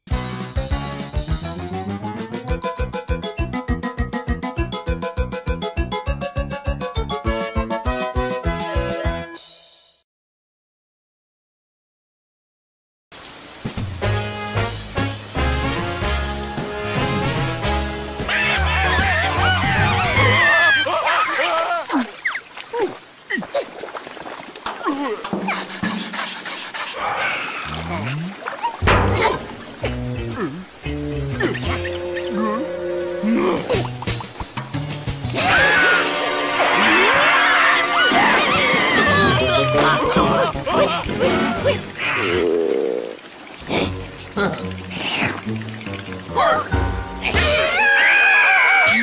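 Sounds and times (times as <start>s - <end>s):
cartoon character high-pitched scream: 18.3s - 21.9s, 35.4s - 36.1s, 36.8s - 40.5s, 47.4s - 49.0s.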